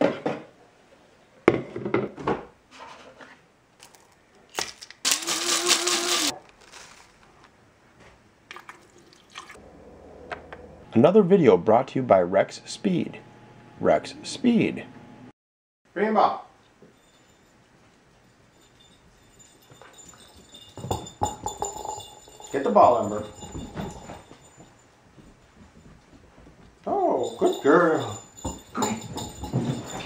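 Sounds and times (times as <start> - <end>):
coffee beans grinding rattle: 5.0 - 7.2.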